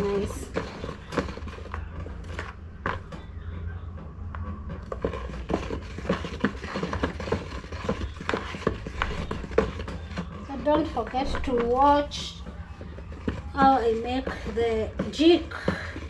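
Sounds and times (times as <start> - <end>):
thick liquid swirling: 0.0 - 3.3, 4.4 - 16.0.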